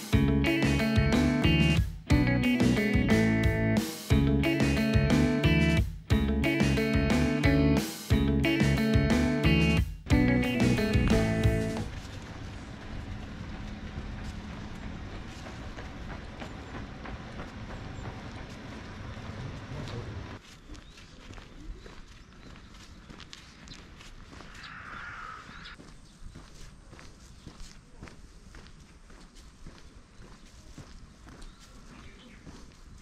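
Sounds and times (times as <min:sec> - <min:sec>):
outdoor background noise: 0:09.5 - 0:33.0
footsteps on stone and gravel: 0:10.1 - 0:33.0.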